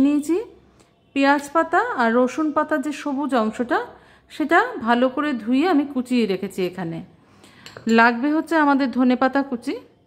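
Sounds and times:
woman speaking: 0.0 - 0.6, 1.2 - 7.1, 7.8 - 10.0
ceramic bowls clinking: 7.5 - 8.4.

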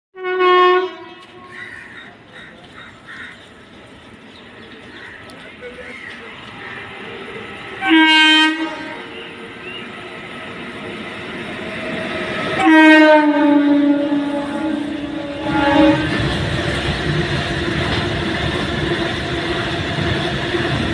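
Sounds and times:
locomotive horn blasts: 0.2 - 1.5, 7.8 - 9.4, 12.6 - 16.4
train wagons rumbling past: 0.2 - 20.9.

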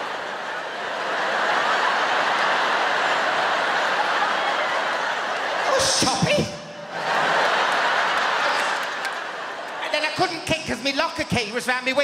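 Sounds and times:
audience laughing loudly: 0.0 - 11.2.

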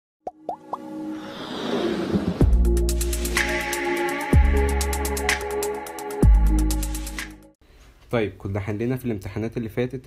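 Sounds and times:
rush of sound with tones: 0.8 - 4.0.

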